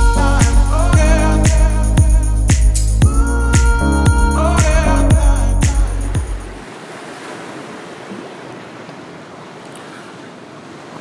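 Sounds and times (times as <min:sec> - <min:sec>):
background music: 0:00.0 - 0:06.6
waves washing over rocks: 0:06.6 - 0:11.0.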